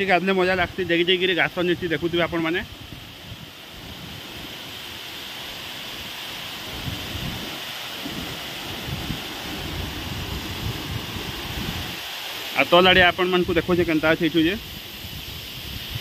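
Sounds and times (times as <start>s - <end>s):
waterfall rushing: 0.0s - 16.0s
wind buffeting microphone: 1.7s - 12.2s.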